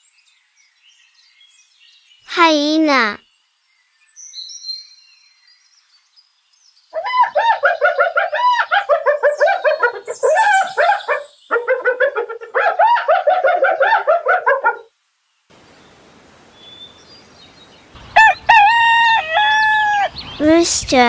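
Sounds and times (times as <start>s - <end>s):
hyena giggling: 7.2s - 13.8s.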